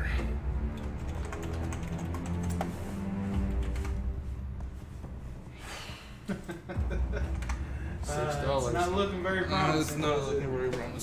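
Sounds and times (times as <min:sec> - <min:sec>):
typing on computer keyboard: 0:00.7 - 0:02.7.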